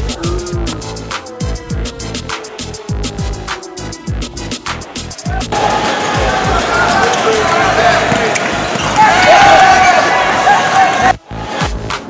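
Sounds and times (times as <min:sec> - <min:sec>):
electronic music with bass drum: 0:00.0 - 0:09.4
players' voices: 0:05.2 - 0:11.2
ball bouncing: 0:08.0 - 0:09.0.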